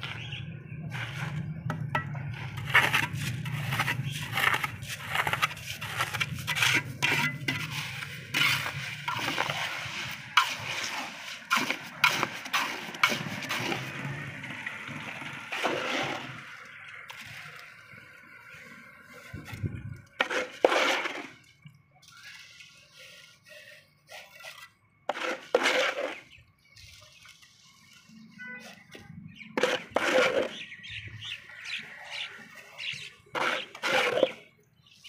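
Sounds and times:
trowel scraping wet concrete: 0.0 - 35.0.

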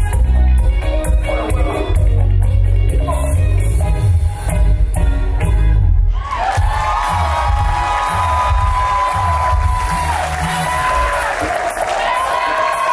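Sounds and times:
bachata music: 0.0 - 12.9
audience cheering and whooping: 6.1 - 12.9.

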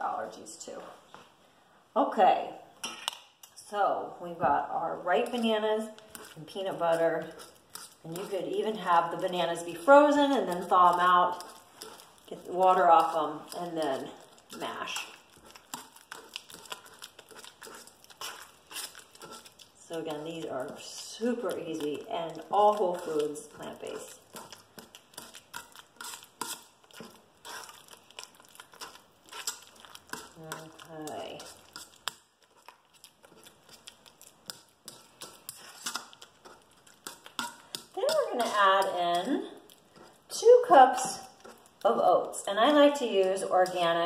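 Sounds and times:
soft squishing mashing: 4.5 - 44.0
utensil scraping metal bowl: 4.9 - 44.0
utensil tapping metal bowl: 34.5 - 39.3.

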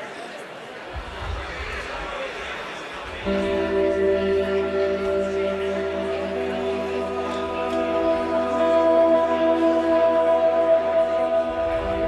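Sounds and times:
amplified instrument sustained chord: 3.3 - 12.0.

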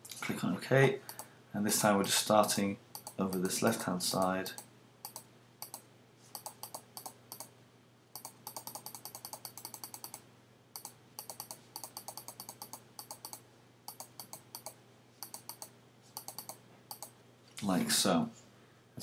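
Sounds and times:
faint steady hum: 0.0 - 19.0
computer mouse clicks: 1.1 - 1.3, 2.0 - 3.5, 4.6 - 5.8, 6.4 - 7.5, 8.2 - 10.2, 10.8 - 17.1.

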